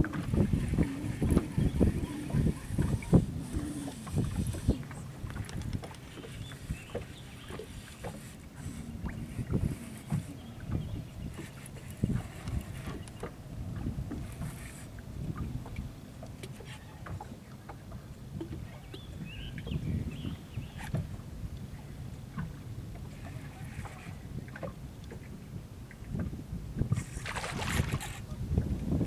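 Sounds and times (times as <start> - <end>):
waves lapping against boat hull: 0.0 - 29.0.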